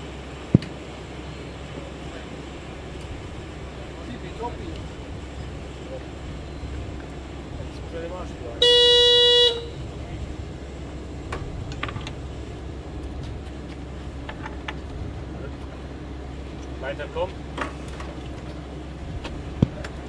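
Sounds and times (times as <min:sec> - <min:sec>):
steady low rumble: 0:00.0 - 0:20.0
horn-like toot: 0:08.6 - 0:09.8.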